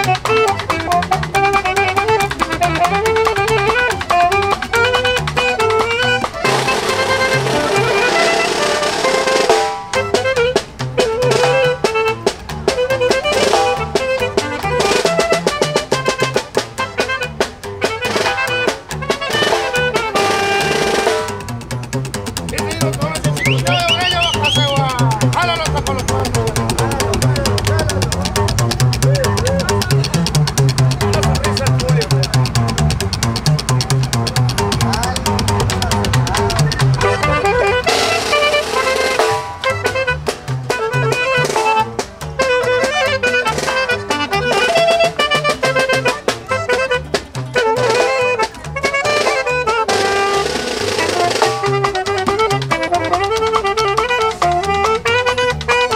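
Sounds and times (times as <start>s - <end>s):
guitar: 0.0s - 55.9s
slapped upright bass: 0.0s - 55.9s
snare drum fast beat: 0.0s - 55.9s.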